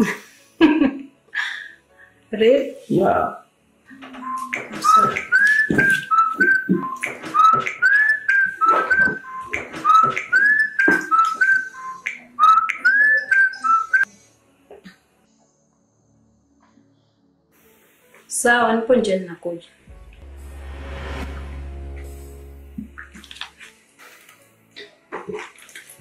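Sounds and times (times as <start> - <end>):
whistled ringtone over a beat: 4.1 - 14.1.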